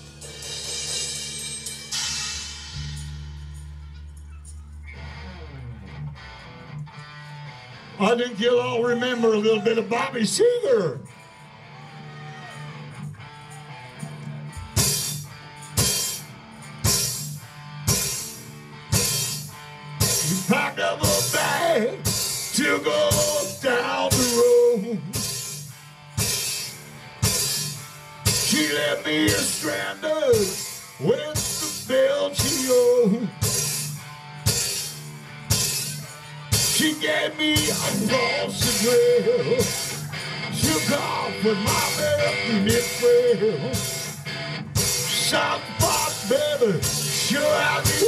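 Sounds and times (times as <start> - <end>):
drum hits with crashed cymbals: 0.0 - 4.0, 33.4 - 36.9
live rock band playing: 0.0 - 4.0, 4.8 - 48.0
person singing: 20.2 - 25.2, 28.3 - 33.4, 36.5 - 44.0, 45.0 - 48.0.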